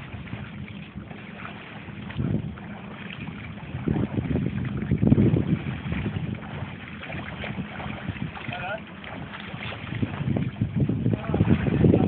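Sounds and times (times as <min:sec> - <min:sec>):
shallow sea water: 0:00.0 - 0:12.0
wind buffeting microphone: 0:00.0 - 0:12.0.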